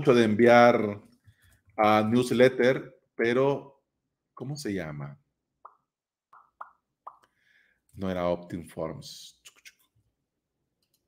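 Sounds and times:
soft mouth clicks: 6.4s - 7.4s, 9.4s - 9.9s.

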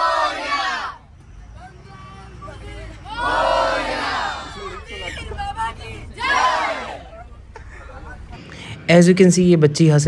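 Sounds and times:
children shouting together: 0.0s - 1.0s, 3.0s - 7.1s
scattered chatter: 0.0s - 8.9s
low bus rumble: 0.0s - 10.0s.

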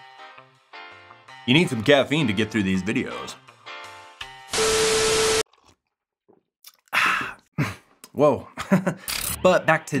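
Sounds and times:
person gasping: 6.8s - 7.9s.

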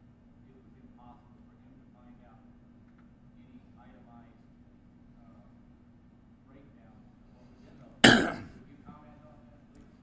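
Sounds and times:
man clearing his throat: 8.0s - 8.6s.

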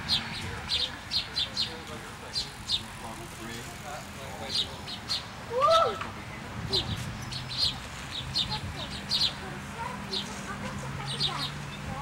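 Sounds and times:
small birds chirping: 0.0s - 12.0s
street traffic rumble: 0.0s - 12.0s.

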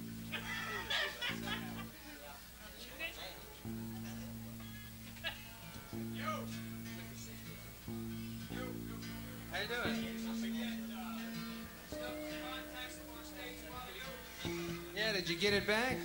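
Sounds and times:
voices talking: 0.0s - 16.0s
low guitar note plucked: 5.8s - 13.8s.

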